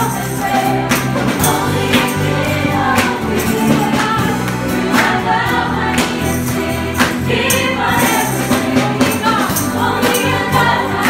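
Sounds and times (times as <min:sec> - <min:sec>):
bass guitar: 0:00.0 - 0:11.0
group singing together: 0:00.0 - 0:11.0
guitar: 0:00.0 - 0:11.0
jingling tambourines: 0:00.0 - 0:11.0
steady drum beat: 0:00.0 - 0:11.0.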